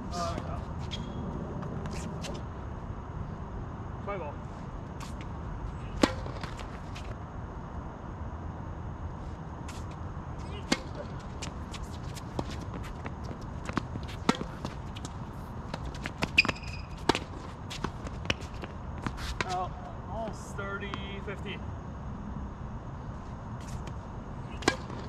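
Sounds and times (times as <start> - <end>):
rackets striking tennis ball: 5.9 - 7.1, 10.5 - 19.7, 24.5 - 25.0
tennis ball bouncing: 6.0 - 7.0, 10.6 - 19.6, 23.8 - 25.0.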